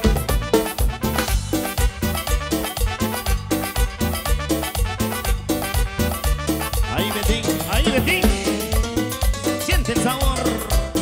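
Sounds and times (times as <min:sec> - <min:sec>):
live dance band playing: 0:00.0 - 0:11.0.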